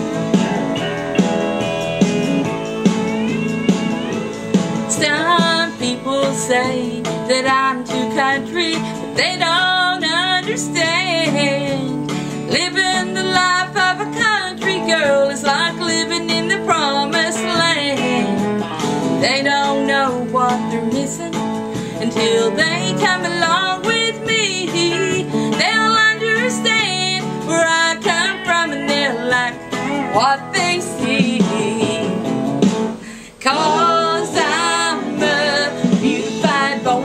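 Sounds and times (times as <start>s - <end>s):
strummed acoustic guitar: 0.0s - 37.0s
woman singing: 4.9s - 18.6s, 19.2s - 32.3s, 33.2s - 37.0s.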